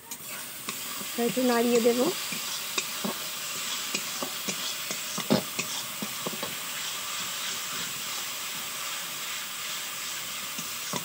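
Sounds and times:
spices sizzling in oil: 0.0 - 11.0
spatula scraping pan: 0.7 - 11.0.

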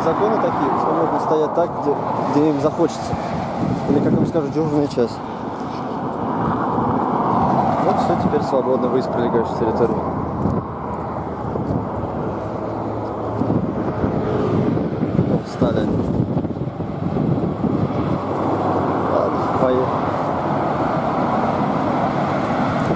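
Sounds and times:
highway traffic passing: 0.0 - 22.9.

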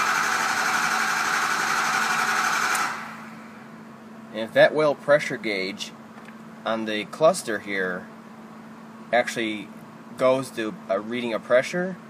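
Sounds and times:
diesel engine cranking on starter: 0.0 - 3.6.

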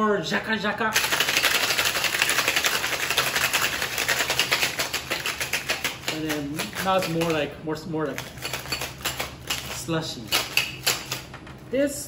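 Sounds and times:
ice rattling in a shaker: 1.0 - 7.4.

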